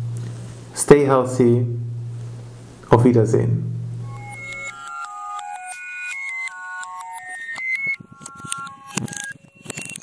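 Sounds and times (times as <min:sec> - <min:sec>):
electronic beeping tones: 0:04.0 - 0:10.0
glitchy clicks and ticks: 0:04.0 - 0:10.0.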